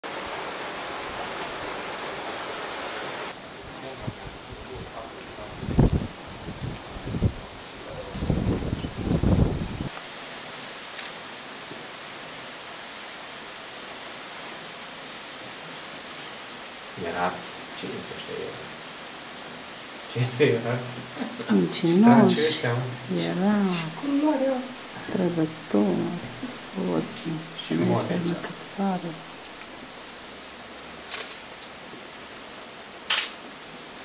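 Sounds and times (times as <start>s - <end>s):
steady hiss like light rain: 0.0s - 34.0s.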